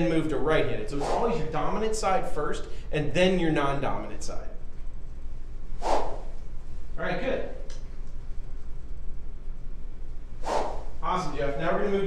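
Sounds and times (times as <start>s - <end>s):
low room hum: 0.0s - 12.0s
club swing whoosh: 0.9s - 1.5s, 5.8s - 6.3s, 10.4s - 11.0s.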